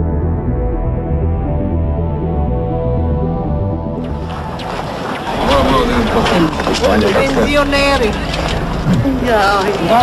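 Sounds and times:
background music: 0.0 - 10.0
people talking: 5.4 - 10.0.

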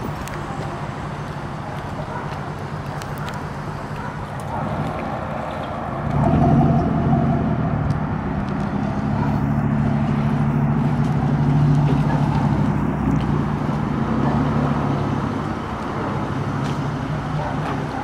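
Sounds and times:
pickup truck engine running: 0.0 - 18.0.

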